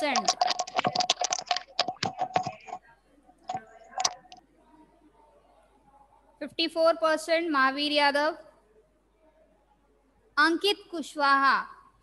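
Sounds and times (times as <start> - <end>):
computer keyboard typing: 0.0 - 2.8, 3.5 - 4.4.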